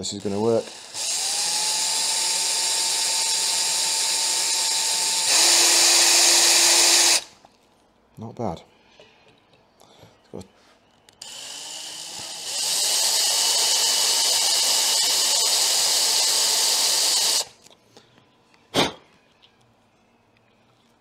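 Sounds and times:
cordless drill whining: 0.0s - 7.3s, 11.2s - 17.5s.

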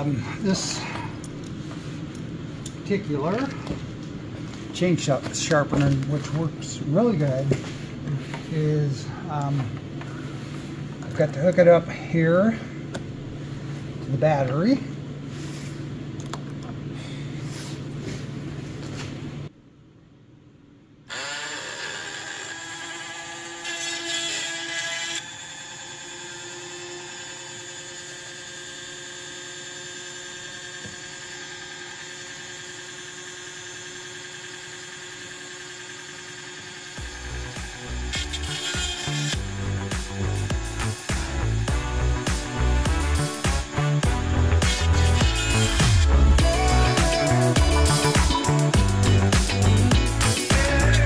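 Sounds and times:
chain sharpener grinding motor: 21.1s - 51.0s
background music with beat: 39.4s - 51.0s.

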